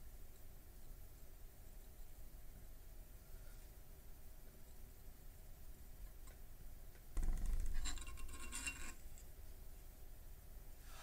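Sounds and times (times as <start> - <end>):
tools scraping and clinking on desk: 7.5 - 9.3.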